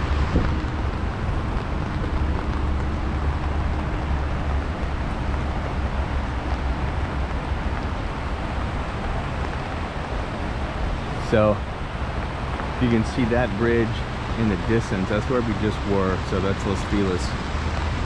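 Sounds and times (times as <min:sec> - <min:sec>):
floodwater rushing: 0:00.0 - 0:18.0
wind buffeting microphone: 0:00.0 - 0:18.0.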